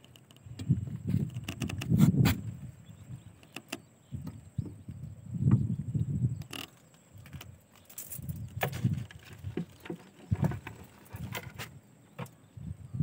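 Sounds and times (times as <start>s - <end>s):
low handling bumps: 0.0s - 12.4s
wire-mesh trap rattling: 6.6s - 11.7s.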